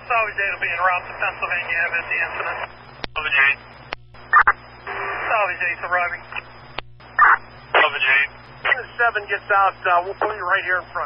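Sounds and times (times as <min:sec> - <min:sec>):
man's voice over radio scanner: 0:00.0 - 0:03.7, 0:04.9 - 0:06.4, 0:07.8 - 0:11.0
steady low hum: 0:00.0 - 0:11.0.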